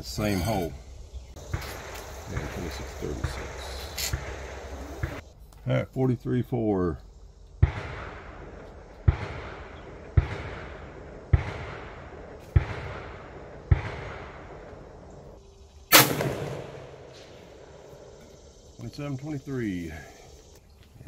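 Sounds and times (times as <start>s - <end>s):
sharp gunshots: 1.5s - 5.2s, 7.6s - 14.7s, 15.9s - 17.7s
loud rifle shot with echo: 7.6s - 14.7s, 15.9s - 17.3s.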